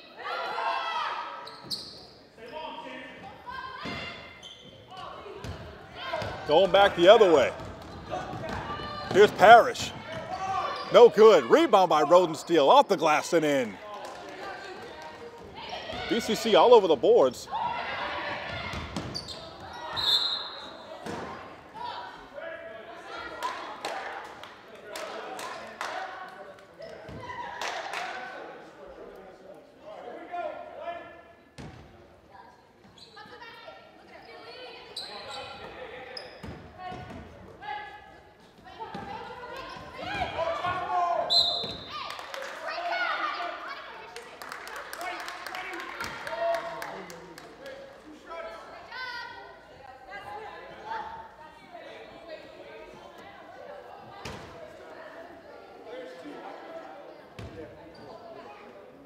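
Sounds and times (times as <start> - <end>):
voices in gymnasium: 0.0 - 59.0
basketball bouncing on court: 5.4 - 10.7
referee's whistle blasts: 19.9 - 20.7, 41.3 - 41.9.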